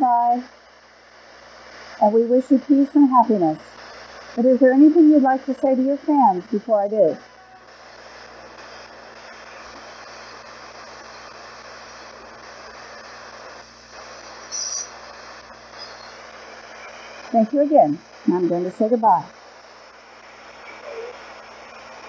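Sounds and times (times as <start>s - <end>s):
loud static crackle: 0.0s - 22.0s
radio static hiss: 0.0s - 22.0s.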